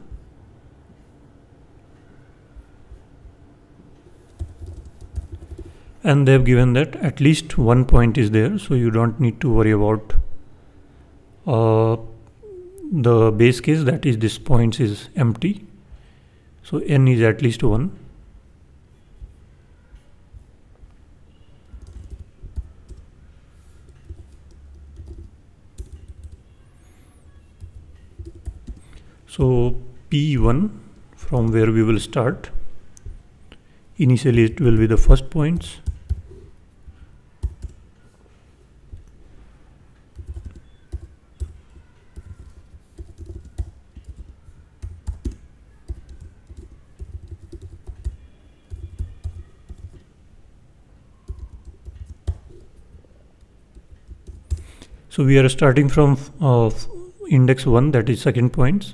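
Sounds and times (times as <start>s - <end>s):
keyboard keys clicking: 4.3s - 5.7s, 21.6s - 23.1s, 23.9s - 26.4s, 27.6s - 28.9s, 37.4s - 37.8s, 40.1s - 50.1s, 51.2s - 54.8s.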